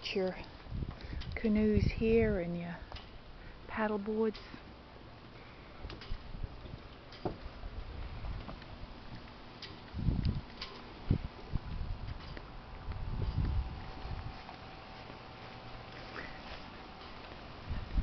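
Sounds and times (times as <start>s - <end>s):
faint steady hum: 0.0s - 18.0s
wind rumbling on microphone: 0.5s - 2.6s, 5.8s - 15.9s, 17.4s - 18.0s
light footsteps: 4.0s - 18.0s.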